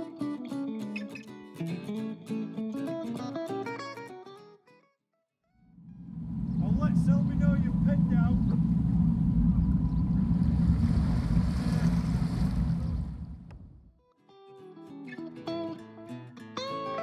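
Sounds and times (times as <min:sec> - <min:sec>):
wind on microphone: 0:05.8 - 0:13.8
boat engine rumble: 0:05.8 - 0:13.9.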